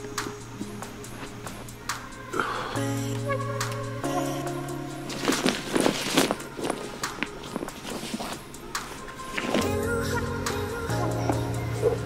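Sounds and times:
backpack rustling and knocking: 0:05.1 - 0:09.8.

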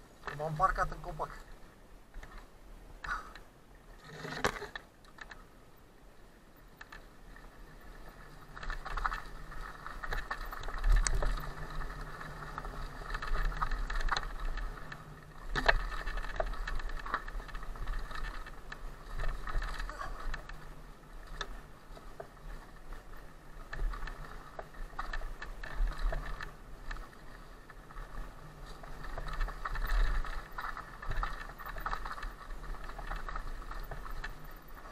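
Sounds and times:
bike tyres rumbling on dirt trail: 0:00.0 - 0:34.9.

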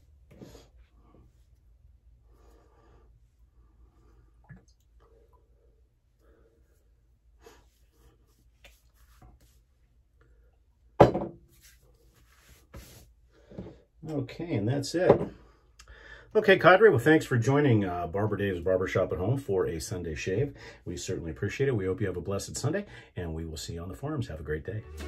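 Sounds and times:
hands patting skin: 0:08.3 - 0:09.6.

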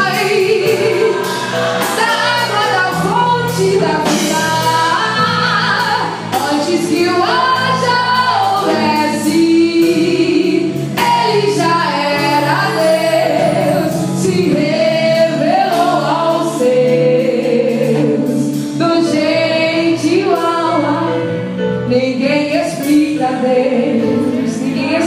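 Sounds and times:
bass: 0:00.0 - 0:25.0
drums: 0:00.0 - 0:25.0
keyboard: 0:00.0 - 0:25.0
woman singing into microphone: 0:00.0 - 0:25.0.

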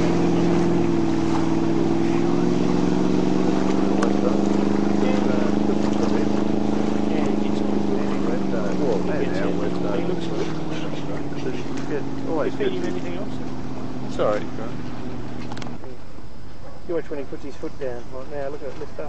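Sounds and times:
speedboat engine running hard: 0:00.0 - 0:19.0.

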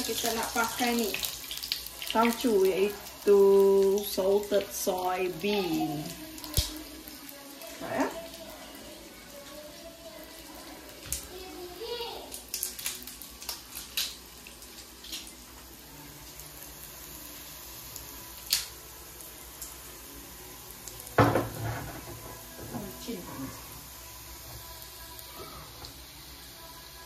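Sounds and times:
faint sizzle of frying: 0:00.0 - 0:27.0.

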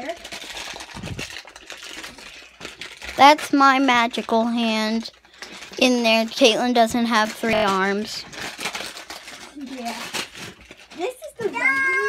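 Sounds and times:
plastic bag crinkling: 0:00.0 - 0:12.0.

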